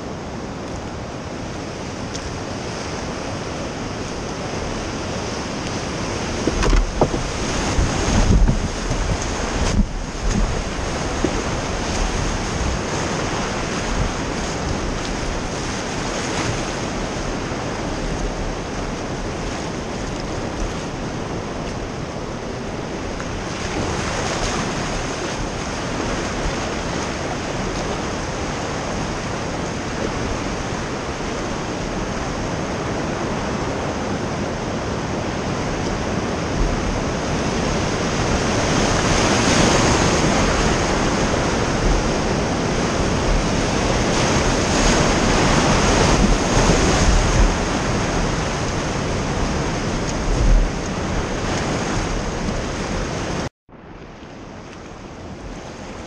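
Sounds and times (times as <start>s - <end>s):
whitewater rapids rushing: 0.0s - 53.5s
wind buffeting microphone: 0.0s - 53.5s.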